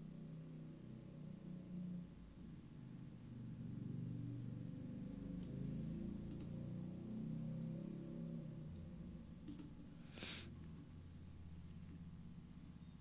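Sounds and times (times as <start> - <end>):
low background hum: 0.0 - 13.0
computer mouse clicks: 6.2 - 6.6, 9.4 - 9.8.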